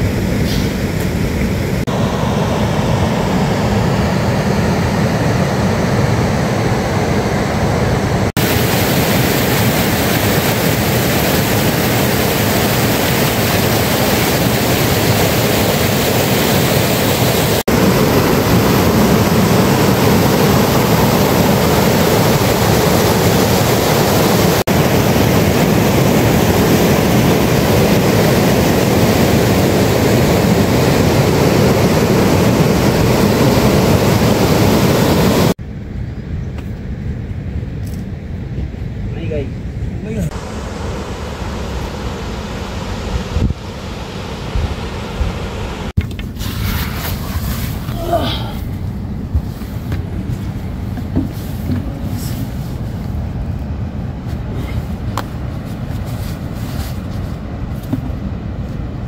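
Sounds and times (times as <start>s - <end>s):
stream rushing over rocks: 8.4s - 18.2s.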